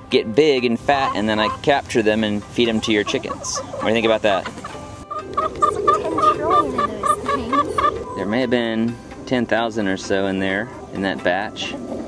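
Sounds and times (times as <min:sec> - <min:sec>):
hens clucking: 0:00.4 - 0:12.0.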